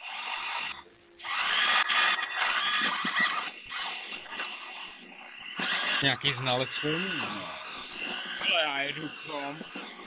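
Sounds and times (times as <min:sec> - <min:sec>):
robot drive motors whirring: 0:00.0 - 0:10.0.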